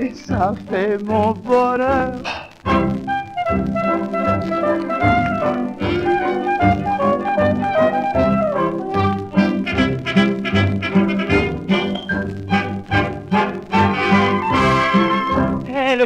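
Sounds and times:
dance orchestra playing: 0:02.7 - 0:15.6.

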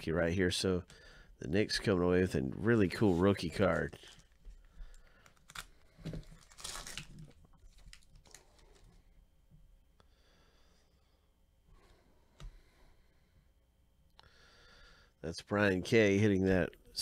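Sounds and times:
cards rustling: 0:02.9 - 0:09.0
foil wrapper tearing: 0:05.2 - 0:08.9.

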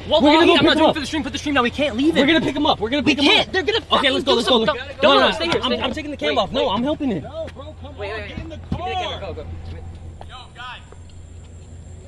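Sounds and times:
steady low hum: 0:00.0 - 0:12.0
distant man shouting: 0:07.3 - 0:11.0.

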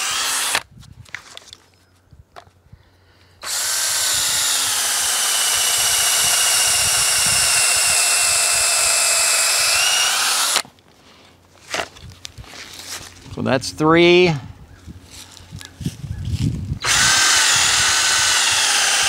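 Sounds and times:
cordless drill boring into wood: 0:00.0 - 0:00.6, 0:03.4 - 0:10.6, 0:16.8 - 0:19.0.

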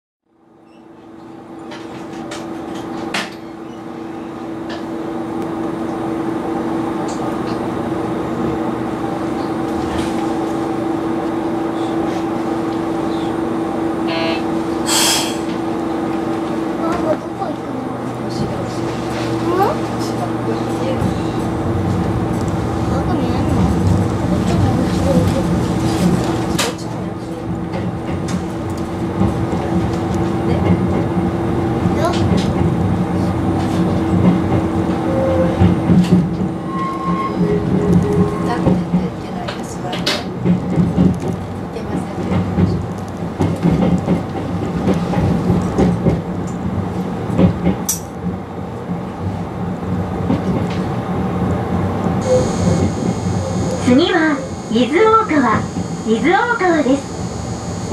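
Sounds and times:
electric train equipment hum: 0:00.4 - 0:57.9
wheels squealing: 0:36.6 - 0:38.8, 0:52.2 - 0:57.9.

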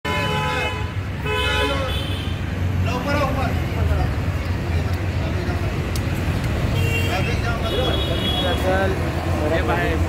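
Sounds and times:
engines rumbling: 0:00.0 - 0:10.0
vehicle horn honking: 0:00.1 - 0:02.4, 0:06.8 - 0:08.7.

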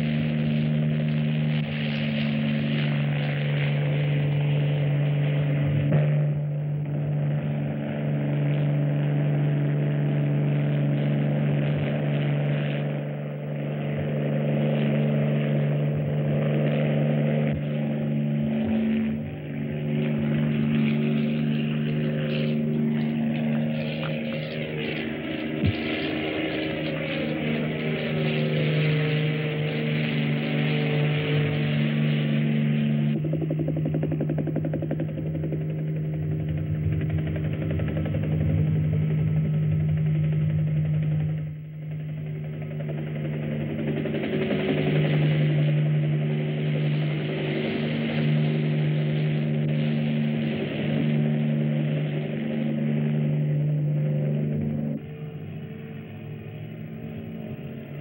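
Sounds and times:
helicopter engine and rotor: 0:00.0 - 0:58.0.

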